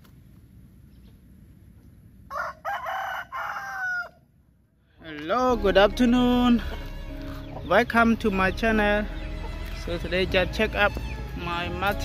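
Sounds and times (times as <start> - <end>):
rooster crowing: 2.3 - 4.3.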